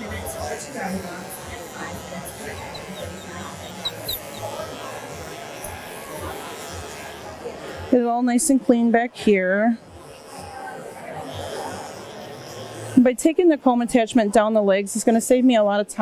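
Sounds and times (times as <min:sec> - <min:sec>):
electric clipper running: 0:00.0 - 0:15.2
voices chattering: 0:00.0 - 0:15.6
faint music: 0:00.0 - 0:16.0.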